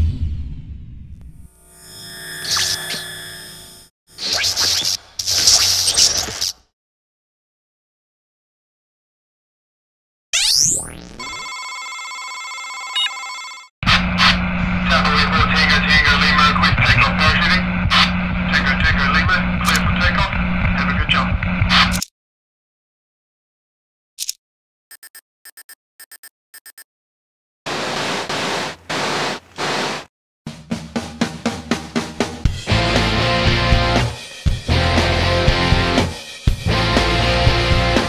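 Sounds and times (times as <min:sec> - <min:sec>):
steady electronic tone: 0:01.4 - 0:03.9
radio static: 0:13.8 - 0:22.0.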